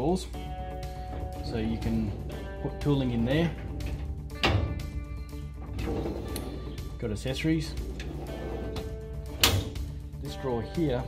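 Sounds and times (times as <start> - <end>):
background music: 0.0 - 11.0
steel drawer sliding on runners: 7.9 - 9.0
drawer closing bang: 9.4 - 9.8.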